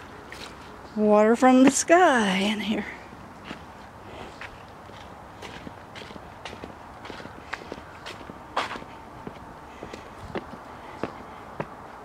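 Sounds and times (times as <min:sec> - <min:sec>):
footsteps walking outdoors: 0:00.0 - 0:12.0.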